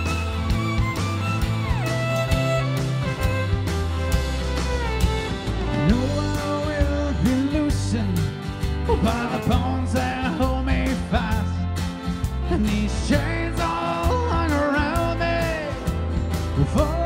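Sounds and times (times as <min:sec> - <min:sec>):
rock band playing live: 0:00.0 - 0:17.0.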